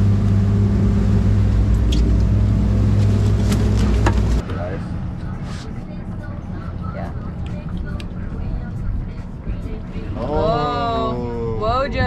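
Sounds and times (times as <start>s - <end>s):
background rumble: 0.0s - 10.2s
boat engines humming: 0.0s - 12.0s.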